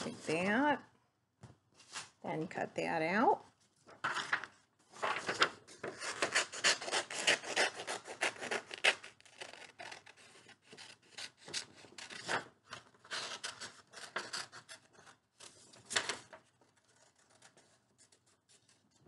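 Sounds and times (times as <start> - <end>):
paper crackling: 3.8 - 19.0
scissors snipping paper: 6.0 - 12.4.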